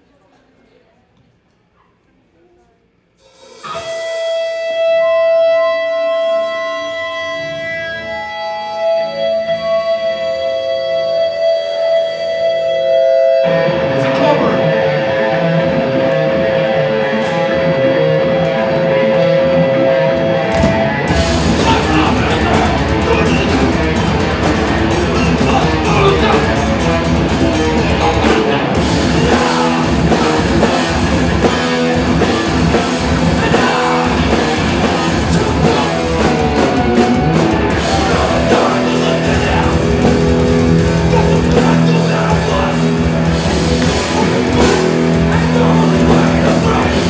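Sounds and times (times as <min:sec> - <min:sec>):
drums: 0:02.9 - 0:47.0
heavy distorted guitar and bass: 0:03.4 - 0:47.0.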